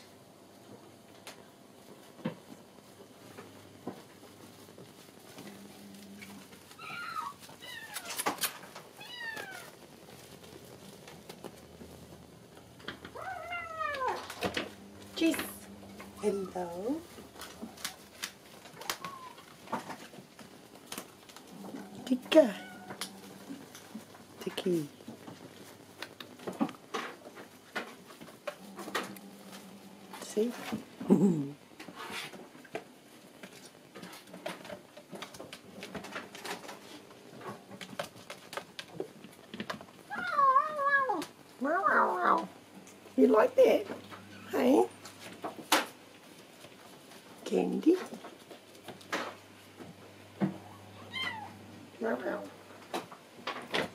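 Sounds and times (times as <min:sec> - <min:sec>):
kitten meowing: 0:06.8 - 0:08.3, 0:09.0 - 0:09.8, 0:13.2 - 0:14.3, 0:18.8 - 0:19.4, 0:50.7 - 0:51.6.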